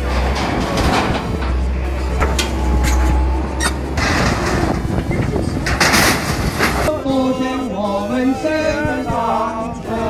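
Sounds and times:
sheet metal and debris crashing: 0:00.0 - 0:07.1
excavator engine drone: 0:00.0 - 0:10.0
voices: 0:00.1 - 0:10.0.

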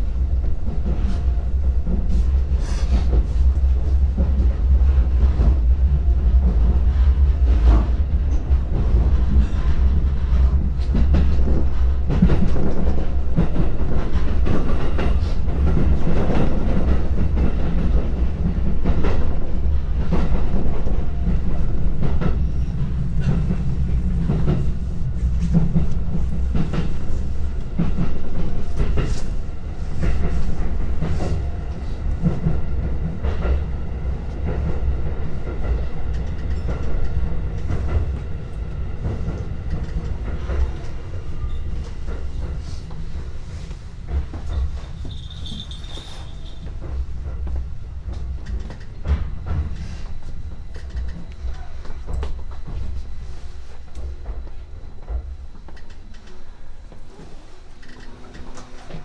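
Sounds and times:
train rumble from inside: 0:00.0 - 0:59.0.

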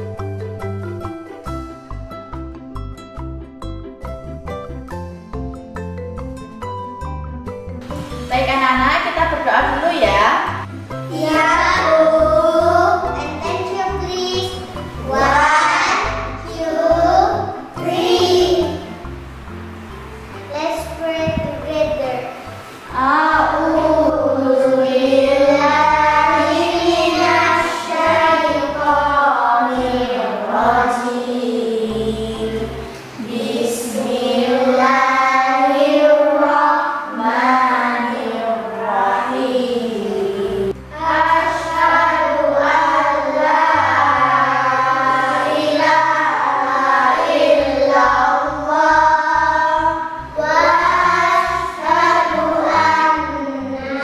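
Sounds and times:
children singing in unison: 0:11.1 - 0:19.1, 0:22.3 - 0:54.0.

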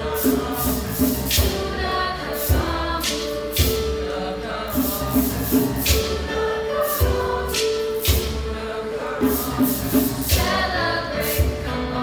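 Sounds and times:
percussion beat: 0:00.0 - 0:11.7
mixed chorus singing in parts: 0:00.0 - 0:12.0.

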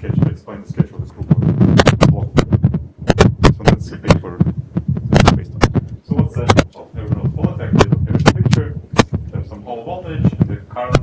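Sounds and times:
man speaking: 0:00.0 - 0:02.4, 0:03.4 - 0:04.5, 0:05.1 - 0:11.0.

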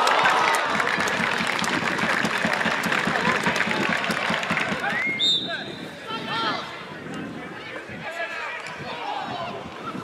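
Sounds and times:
crowd clapping: 0:00.0 - 0:05.0
hum of spectators' voices: 0:00.0 - 0:10.0.

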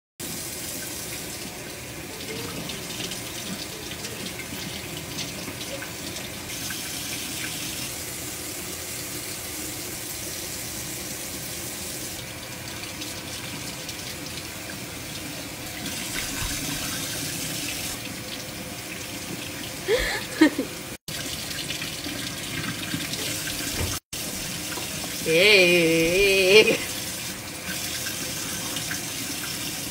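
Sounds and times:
water splashing into sink: 0:12.2 - 0:19.8, 0:20.4 - 0:25.2.

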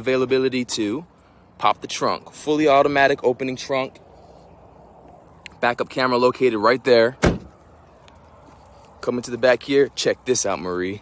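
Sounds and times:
car trunk lid thumping shut: 0:07.2 - 0:07.5.

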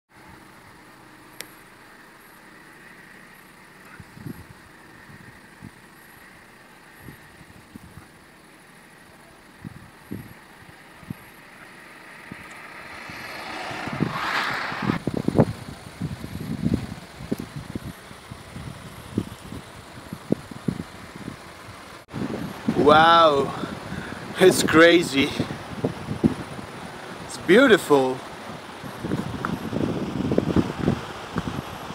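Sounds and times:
car road and wind noise: 0:00.1 - 0:31.9.

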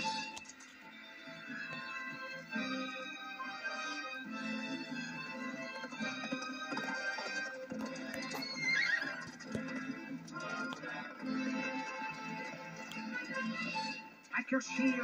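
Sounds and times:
film soundtrack music: 0:00.0 - 0:15.0
horse neighing: 0:08.3 - 0:09.5.

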